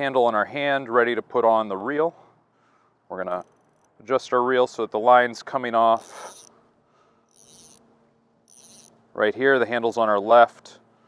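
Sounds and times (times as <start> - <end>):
fly reel ratcheting: 3.4 - 4.0, 6.0 - 6.5, 7.3 - 7.8, 8.5 - 9.0.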